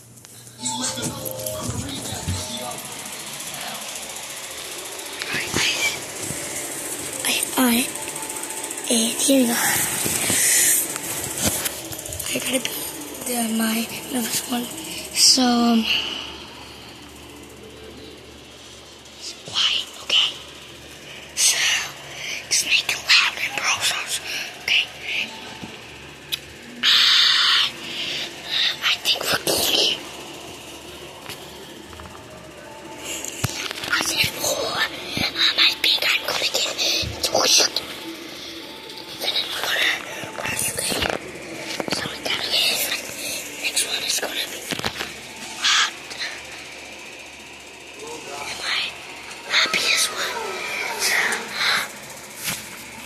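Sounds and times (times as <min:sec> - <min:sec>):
child whispering into microphone: 0:05.2 - 0:06.1, 0:19.2 - 0:20.4, 0:48.6 - 0:51.9
child whispering: 0:05.2 - 0:08.1, 0:08.8 - 0:16.5, 0:19.2 - 0:20.5, 0:21.1 - 0:25.5, 0:26.7 - 0:30.2, 0:33.0 - 0:46.6, 0:48.4 - 0:52.0.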